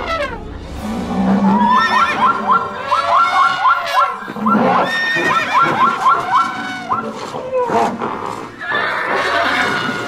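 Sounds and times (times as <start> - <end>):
horse whinnying: 1.6 - 10.0.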